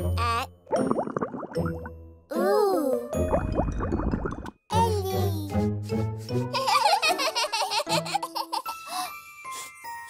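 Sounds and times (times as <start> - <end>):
gentle children's music: 0.0 - 0.9, 1.6 - 10.0
babies giggling: 6.5 - 9.1.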